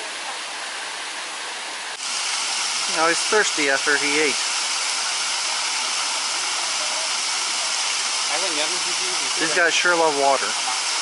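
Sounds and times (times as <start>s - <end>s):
flowing water rushing: 0.0s - 11.0s.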